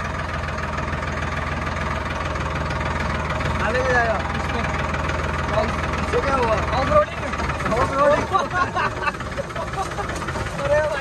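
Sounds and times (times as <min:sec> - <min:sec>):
tractor engine droning: 0:00.0 - 0:11.0.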